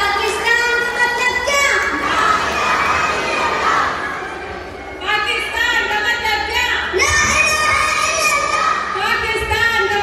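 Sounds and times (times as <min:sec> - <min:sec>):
children cheering: 0:00.4 - 0:04.6.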